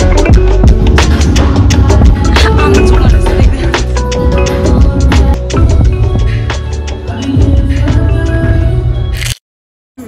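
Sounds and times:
heavy bass line: 0.0 - 6.3
steady drum beat: 0.0 - 8.0.

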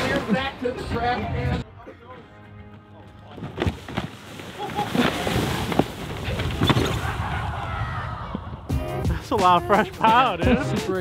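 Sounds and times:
cardboard sled scraping over snow: 3.4 - 7.2.

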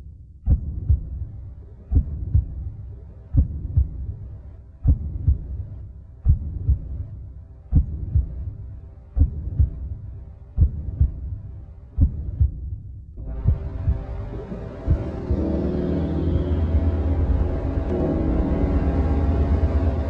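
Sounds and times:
faint steady hum: 0.0 - 20.0
heartbeat thumps: 0.0 - 20.0.

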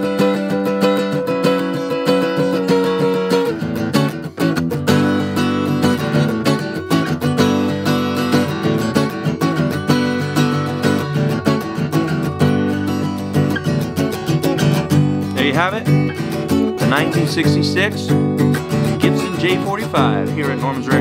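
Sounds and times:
acoustic guitar playing: 0.0 - 21.0.

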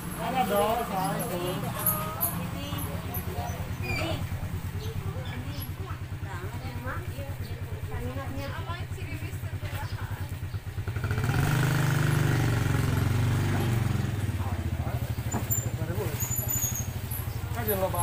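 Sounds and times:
motorcycle engine idling: 0.0 - 18.0
engine revving: 10.4 - 18.0.

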